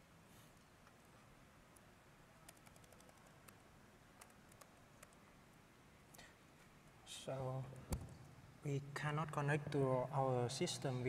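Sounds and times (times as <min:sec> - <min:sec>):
laptop keyboard typing: 0:02.5 - 0:03.6, 0:04.2 - 0:05.2.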